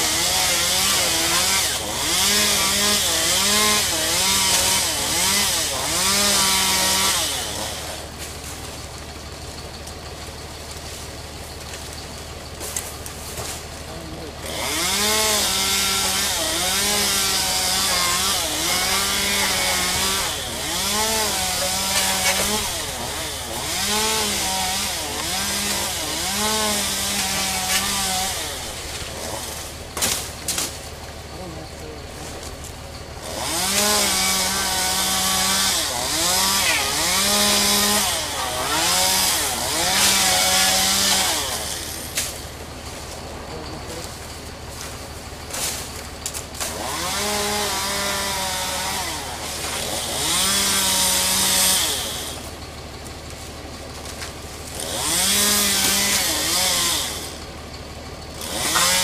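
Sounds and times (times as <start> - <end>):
chainsaw cutting: 0.0 - 59.0.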